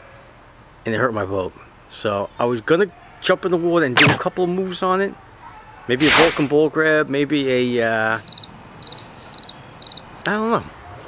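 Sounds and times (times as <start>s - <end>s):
insect chirping: 8.2s - 10.2s.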